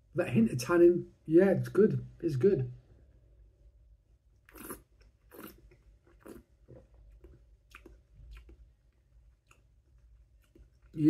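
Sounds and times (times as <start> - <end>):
man swallowing and lip smacking: 4.5 - 11.0.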